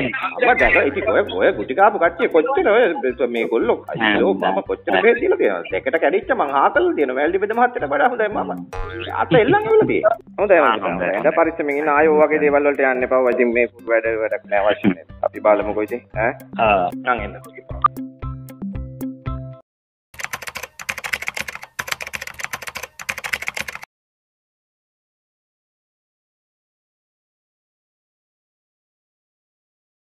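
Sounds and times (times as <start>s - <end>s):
voices talking: 0.0s - 17.9s
music: 0.0s - 19.6s, 20.2s - 23.9s
cartoon sound effect: 8.8s - 10.0s
keyboard typing clicks: 20.2s - 23.9s.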